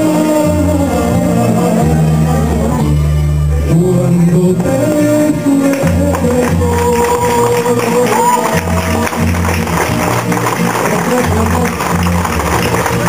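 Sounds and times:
man singing into a microphone: 0.0s - 9.4s, 10.7s - 12.0s
latin backing track: 0.0s - 13.0s.

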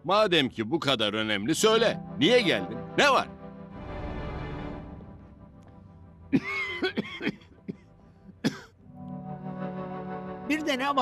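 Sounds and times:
man coughing: 6.3s - 8.8s.

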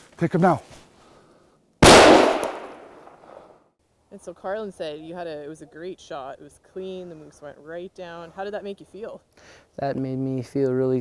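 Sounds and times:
rifle shot: 1.8s - 3.3s.

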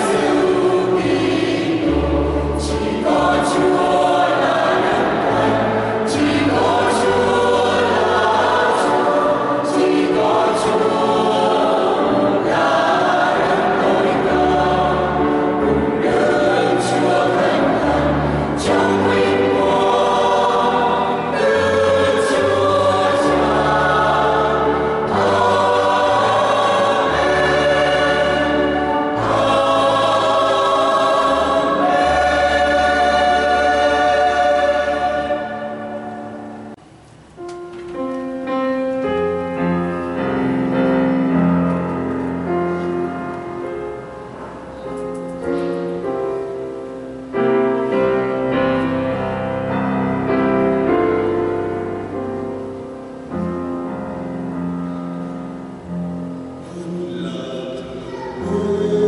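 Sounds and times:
mixed choir singing a hymn: 0.0s - 36.8s, 45.8s - 59.0s.

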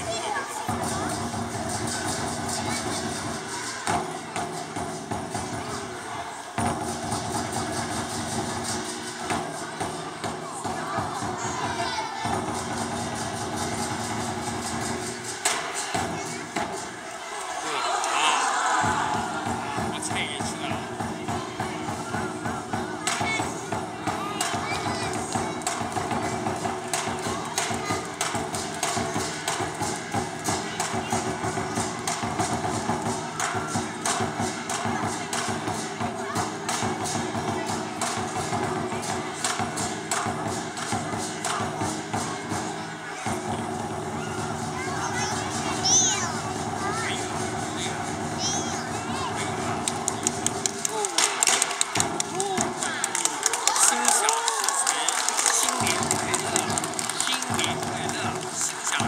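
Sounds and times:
cymbals clashing: 0.0s - 59.0s
drum beaten in fast rhythm: 0.0s - 59.0s.

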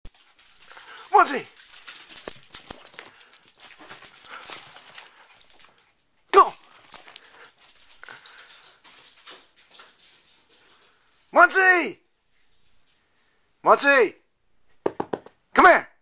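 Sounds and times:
dog panting: 0.1s - 6.0s, 6.6s - 11.3s
dog scuffling steps: 0.1s - 11.4s.

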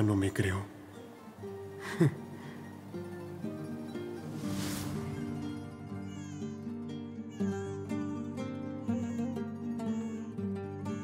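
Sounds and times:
soft background music: 0.0s - 11.0s
baby crying: 5.1s - 11.0s.

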